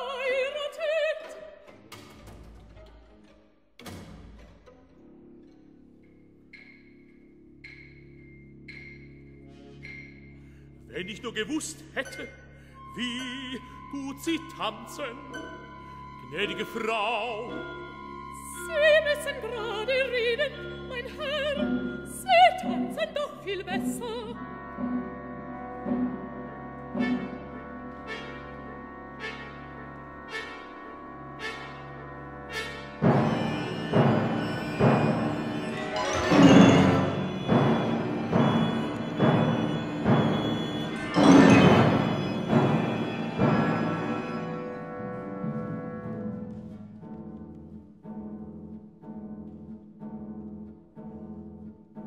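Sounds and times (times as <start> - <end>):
symphony orchestra playing: 0.0 - 52.0
heavy repeated orchestral strokes: 0.3 - 52.0.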